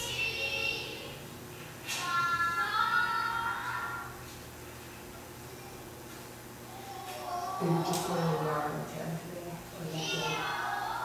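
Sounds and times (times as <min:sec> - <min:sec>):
children singing over speakers: 0:00.0 - 0:01.2, 0:01.9 - 0:04.2
steady room hum: 0:00.0 - 0:11.0.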